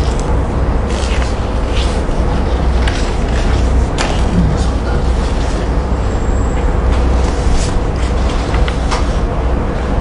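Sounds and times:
loud low rumble: 0.0 - 8.2.

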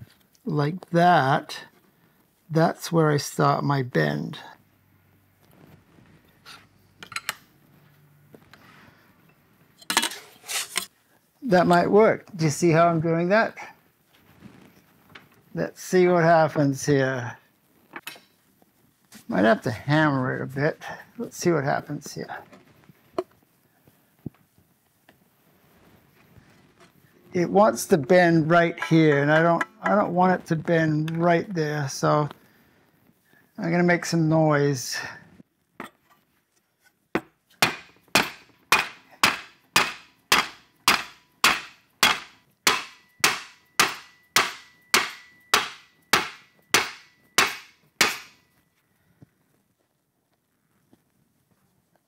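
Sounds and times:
mallet striking wooden block: 37.2 - 48.4.

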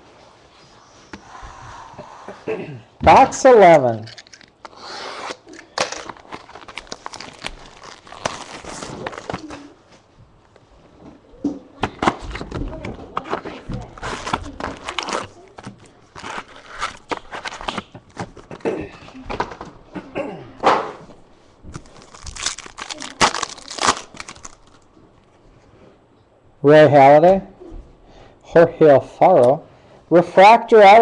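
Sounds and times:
card pack wrappers crinkling and tearing: 4.0 - 9.7, 13.9 - 18.6, 21.8 - 24.9.

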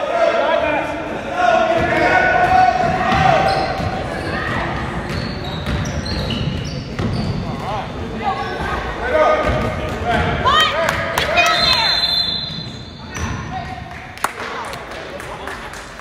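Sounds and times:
echoing shouting voices: 0.0 - 4.6, 8.3 - 13.2
sneakers squeaking: 1.8 - 13.9.

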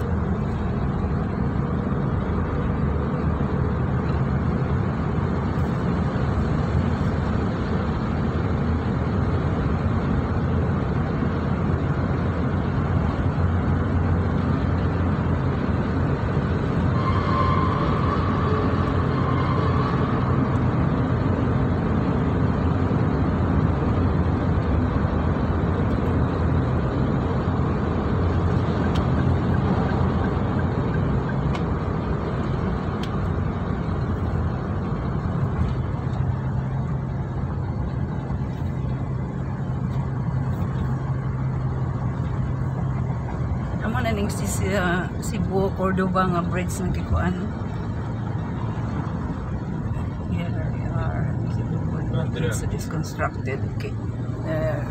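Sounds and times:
car road and engine noise: 0.0 - 54.9.

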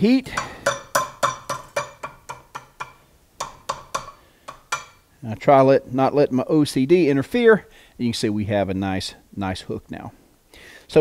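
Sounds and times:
hammer ringing on hot steel: 0.3 - 5.0.

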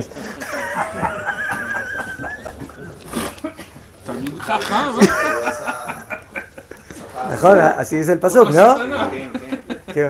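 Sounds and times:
high-pitched pulsing laugh: 0.2 - 3.0.

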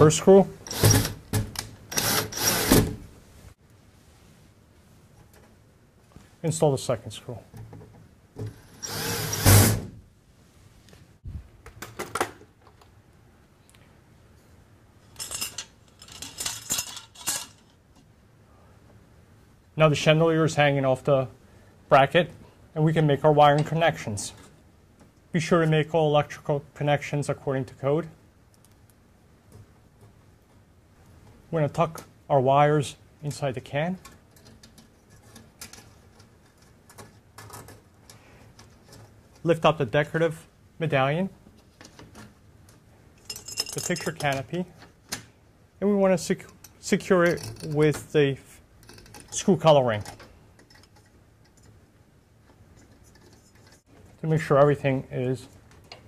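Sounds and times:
cordless drill driving screw: 1.9 - 2.8
wire handling clicks and rustles: 14.4 - 18.2, 33.3 - 40.3, 41.4 - 45.4, 46.2 - 56.0
metallic chain clinking and rattling: 15.2 - 17.8, 43.2 - 44.4.

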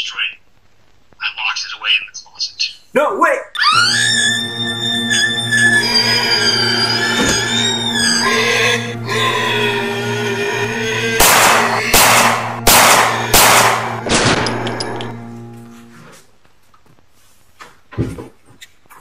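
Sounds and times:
high wavering tones: 3.6 - 16.0
low drone: 3.6 - 16.1
heavy ringing hits: 11.2 - 15.9.

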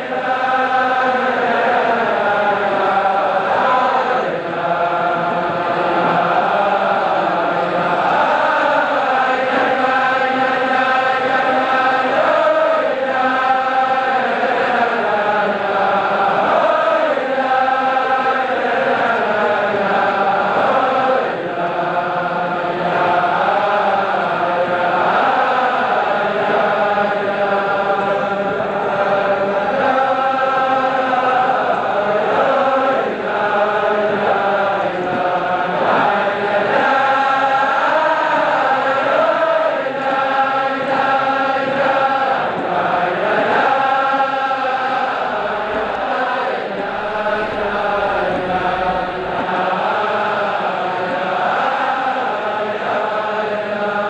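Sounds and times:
crowd of men singing: 0.0 - 54.0.

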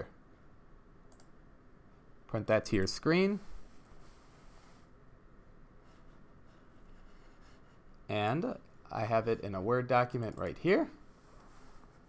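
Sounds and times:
computer mouse click: 1.1 - 1.4, 10.1 - 10.6
room hiss: 1.5 - 12.0.

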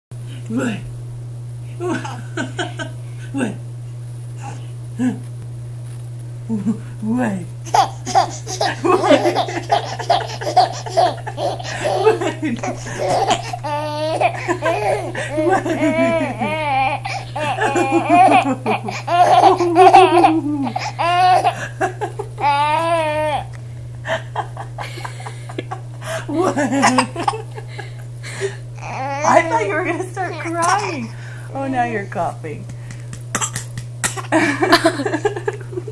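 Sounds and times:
faint low hum: 0.2 - 35.9
baby laughing: 7.7 - 23.5, 26.7 - 27.6, 28.8 - 29.7, 30.3 - 31.1.

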